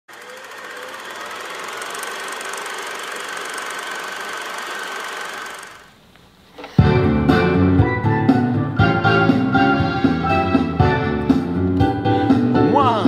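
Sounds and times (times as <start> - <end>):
film projector clatter: 0.1 - 6.0.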